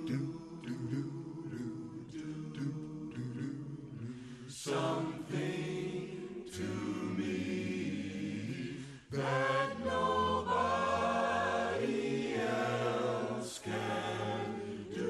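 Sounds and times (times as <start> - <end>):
choir singing held notes: 0.0 - 15.0.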